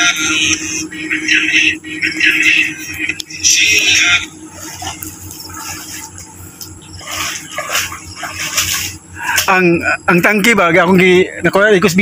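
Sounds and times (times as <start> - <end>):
water sloshing from wading: 0.3 - 10.5.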